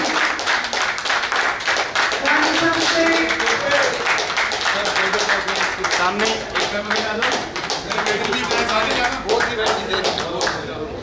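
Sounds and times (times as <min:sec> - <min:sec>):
people clapping: 0:00.0 - 0:10.8.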